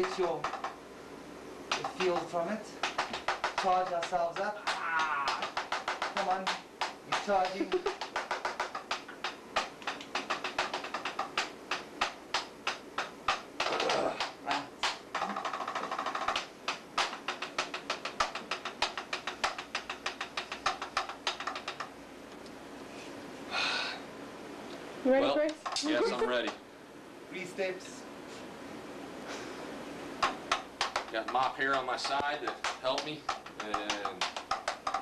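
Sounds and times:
rapid sharp clicks: 0.0s - 0.8s, 1.7s - 22.6s, 30.2s - 35.0s.

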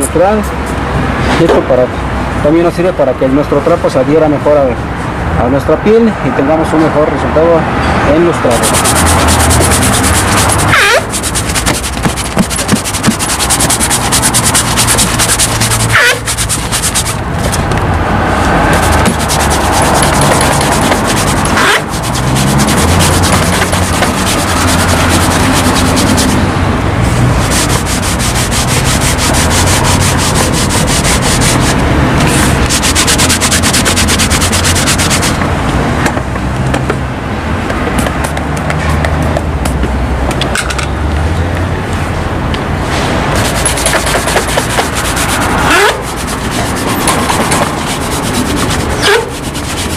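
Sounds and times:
cloth rubbing leather shoe: 8.5s - 17.8s, 18.4s - 26.4s, 27.2s - 35.4s, 43.3s - 49.9s.

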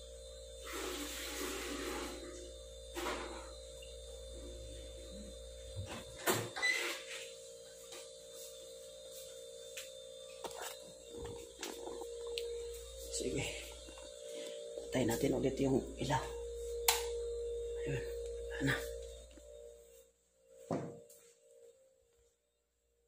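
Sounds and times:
deeper hum: 0.0s - 21.7s
steady electrical hum: 0.0s - 23.0s.

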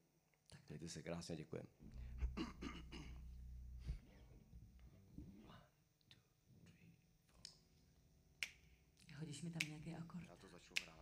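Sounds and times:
finger snap: 7.3s - 7.7s, 8.4s - 9.8s, 10.7s - 11.0s.

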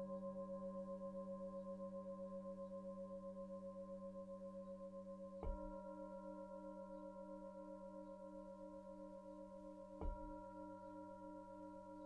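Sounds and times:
singing bowl ringing: 5.4s - 12.0s.

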